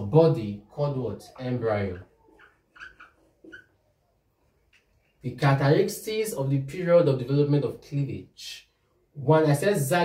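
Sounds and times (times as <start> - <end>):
marker squeaking on whiteboard: 1.0 - 4.1.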